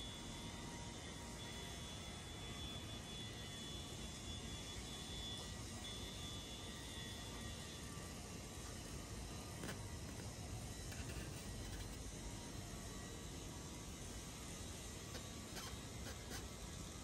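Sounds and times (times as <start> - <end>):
construction site: 0.0 - 17.0
thin high-pitched whine: 0.0 - 17.0.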